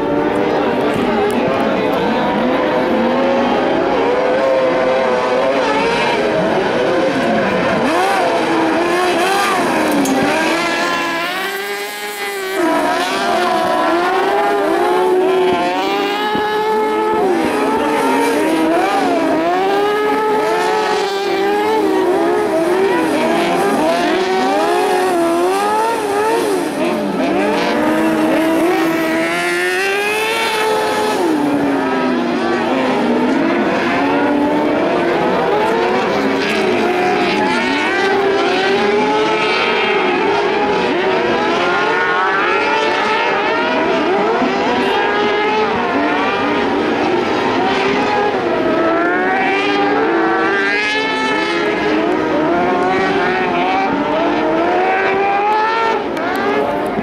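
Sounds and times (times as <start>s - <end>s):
high-revving racing engines: 0.0s - 57.0s.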